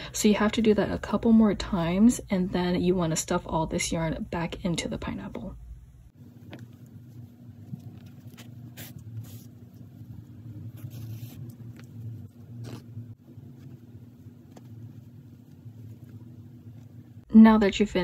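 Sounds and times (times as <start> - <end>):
steady low hum: 0.0 - 18.0
hands rustling yarn: 6.2 - 17.2.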